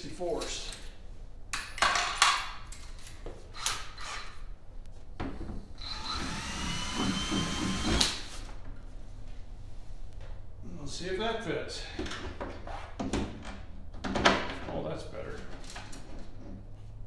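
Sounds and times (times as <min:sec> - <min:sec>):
cordless drill whining: 0:05.8 - 0:08.3.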